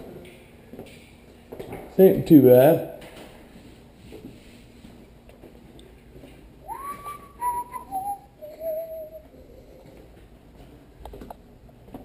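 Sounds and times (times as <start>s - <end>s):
person whistling: 6.6s - 9.3s.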